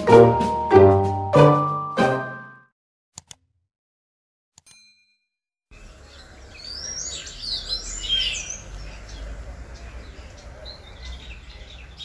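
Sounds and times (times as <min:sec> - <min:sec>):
small birds chirping: 0:05.7 - 0:12.0.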